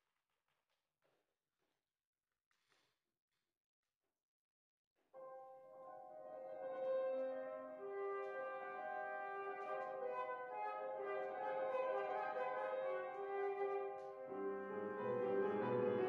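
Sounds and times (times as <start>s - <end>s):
flute playing slow melody: 5.2s - 16.0s
piano accompaniment: 5.2s - 16.0s.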